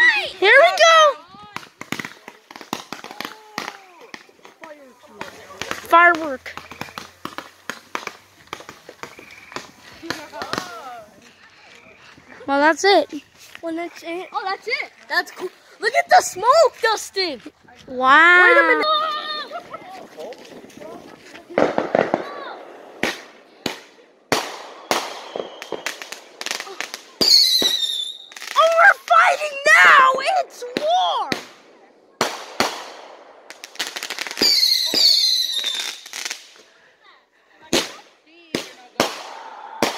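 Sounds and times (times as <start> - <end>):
firework fountain crackling: 0.0 - 36.7, 37.7 - 39.9
high firework whistle: 24.8 - 26.1, 27.2 - 28.5, 34.4 - 36.1.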